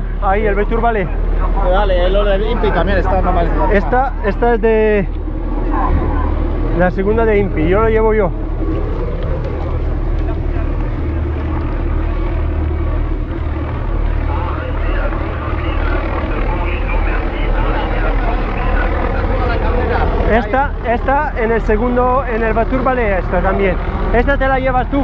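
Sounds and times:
wind rumbling over microphone: 0.0 - 25.0.

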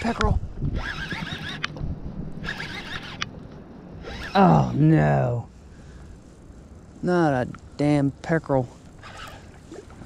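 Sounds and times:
fishing reel whirring: 0.0 - 1.7, 2.4 - 3.3, 4.0 - 4.8, 8.9 - 10.0
sharp reel click: 2.4 - 3.3.

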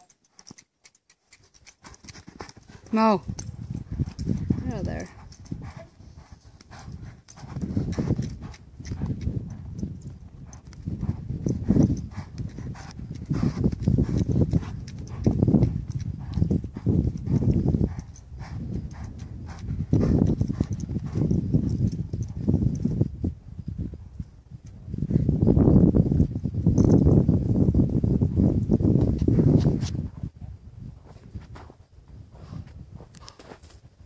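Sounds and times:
hooves thudding in sand: 0.0 - 34.0.

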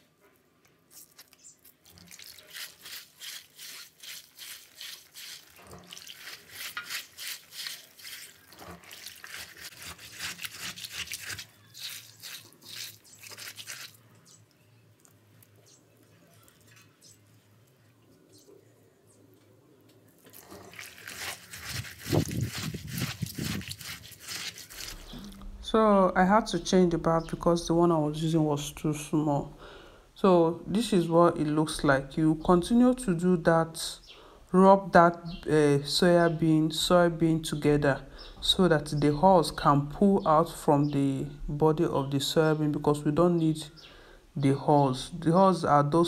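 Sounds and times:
wet hands rubbing beans in water: 0.9 - 14.1, 20.2 - 25.3.

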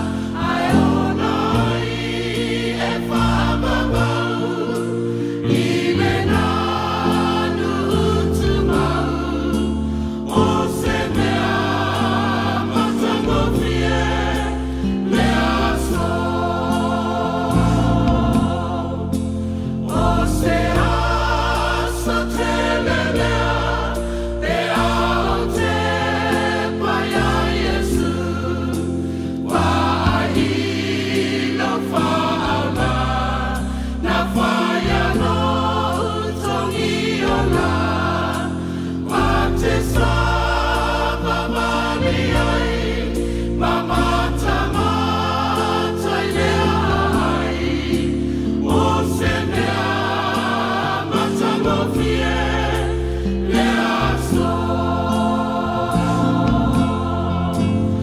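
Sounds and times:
sustained low bass notes: 0.0 - 26.6, 54.0 - 58.0
choir singing a hymn: 0.0 - 58.0.

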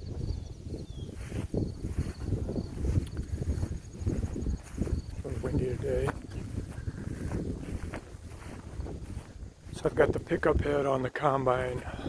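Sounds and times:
insects trilling: 0.0 - 9.8
wind buffeting microphone: 0.0 - 12.0.

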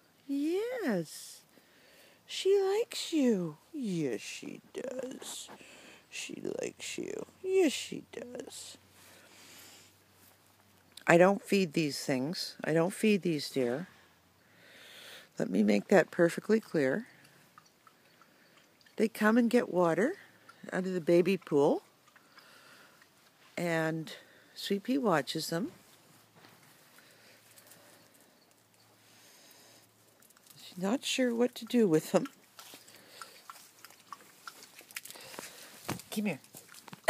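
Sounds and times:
faint small ticks: 17.0 - 19.0, 20.2 - 23.6, 26.4 - 30.7, 31.6 - 35.8
dog lapping water: 31.6 - 35.8.

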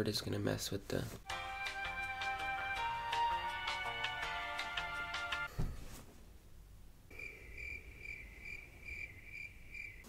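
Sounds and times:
cricket chirping: 7.1 - 10.0.

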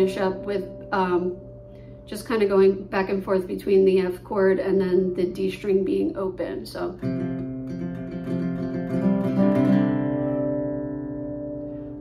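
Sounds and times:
acoustic guitar picked and strummed: 5.4 - 12.0.

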